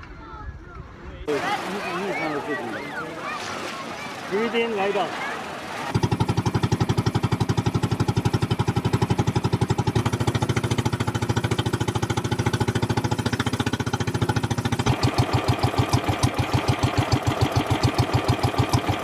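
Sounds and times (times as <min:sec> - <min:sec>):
small boat engine chugging: 0:01.3 - 0:19.0.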